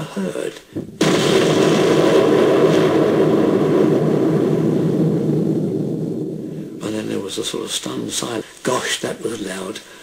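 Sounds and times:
low rumble: 1.0s - 6.8s
man speaking: 6.8s - 10.0s.

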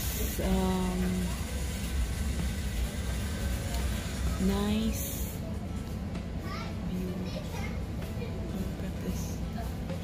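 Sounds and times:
children talking: 6.2s - 10.0s.

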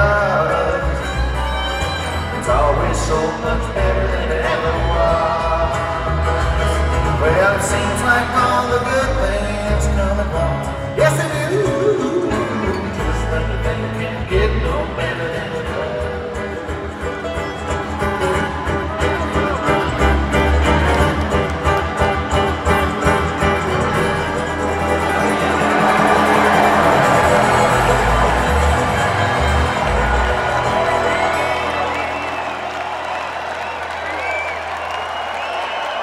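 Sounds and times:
bluegrass string band: 0.0s - 33.2s
crowd cheering and applauding: 0.0s - 36.0s
crowd whooping and whistling: 24.6s - 36.0s.

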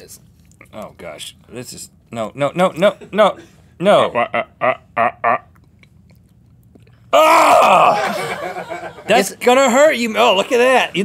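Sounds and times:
man's wordless vocal cry: 7.1s - 8.2s.

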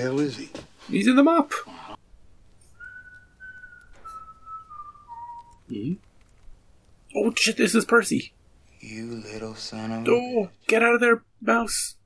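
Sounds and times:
whistle-like tone stepping down: 2.7s - 5.7s.

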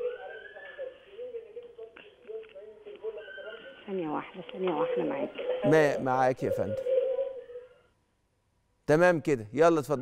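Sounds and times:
muffled voices over telephone: 0.0s - 7.0s.

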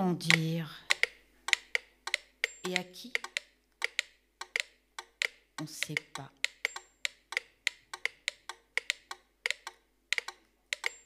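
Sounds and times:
metronomes ticking: 0.0s - 11.0s.

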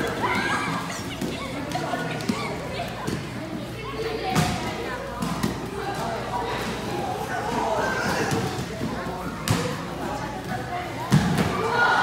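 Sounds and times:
crowd of voices talking: 0.0s - 12.0s.

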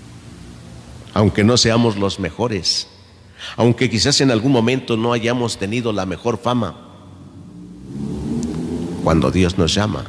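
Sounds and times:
motor vehicle engine rumble: 7.1s - 9.4s.

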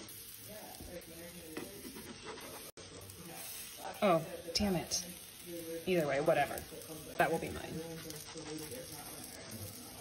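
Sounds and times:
batter sizzling on griddle: 0.0s - 10.0s
spatula scraping: 1.4s - 2.8s, 7.2s - 9.4s.

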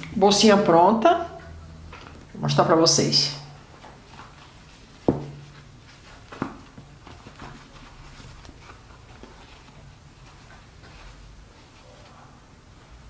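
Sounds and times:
fabric rustling and ticks: 3.8s - 12.1s.

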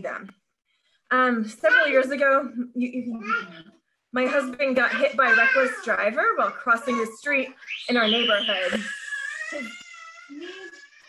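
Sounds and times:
toddler squealing: 6.7s - 11.0s.

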